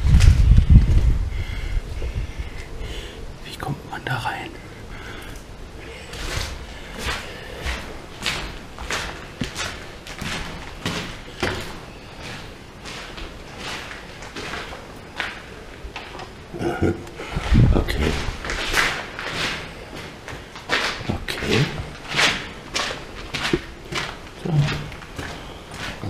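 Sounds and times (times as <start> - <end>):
footsteps scuffing on gritty floor: 6.1 - 16.3, 17.4 - 26.0.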